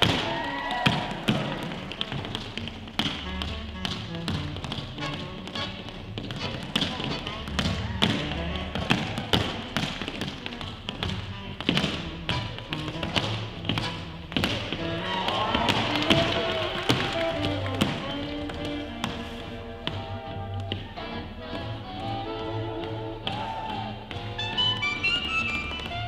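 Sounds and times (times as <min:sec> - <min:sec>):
music: 0:00.0 - 0:26.0
tap shoes on hard floor: 0:00.0 - 0:26.0.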